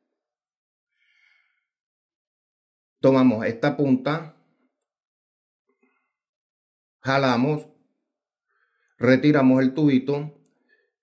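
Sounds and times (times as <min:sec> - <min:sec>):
faint breath: 0:00.9 - 0:01.8, 0:05.7 - 0:06.3, 0:08.4 - 0:09.0, 0:10.6 - 0:11.0.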